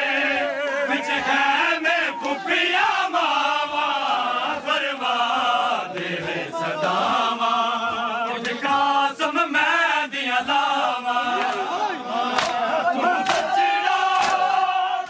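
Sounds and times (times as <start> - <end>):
men chanting in unison: 0.0 - 15.0.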